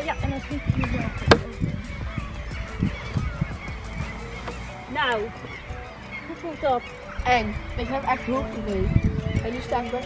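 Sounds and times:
honking bird calls: 0.0s - 10.0s.

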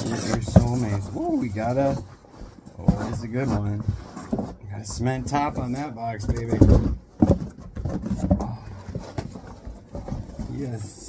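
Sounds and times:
cardboard rustling and scraping: 0.0s - 11.0s.

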